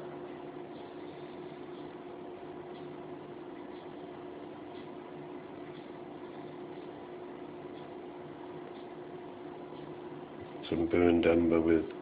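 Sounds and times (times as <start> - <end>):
faint even hum: 0.0 - 12.0.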